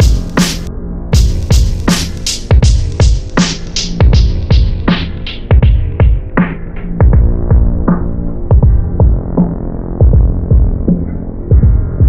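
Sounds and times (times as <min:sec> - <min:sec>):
snare hits: 0:00.0 - 0:00.7, 0:01.9 - 0:02.5, 0:03.4 - 0:04.0
deep kick drums: 0:00.0 - 0:12.0
sustained low bass: 0:00.0 - 0:12.0.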